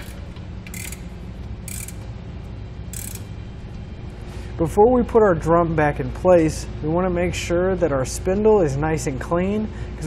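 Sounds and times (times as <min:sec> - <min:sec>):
ratcheting wrench clicking: 0:00.0 - 0:02.1, 0:02.9 - 0:03.3
steady low hum: 0:00.0 - 0:10.0.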